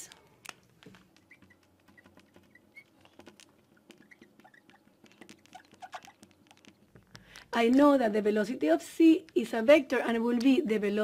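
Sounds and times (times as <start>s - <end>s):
marker squeaking on glass: 0.8s - 7.1s.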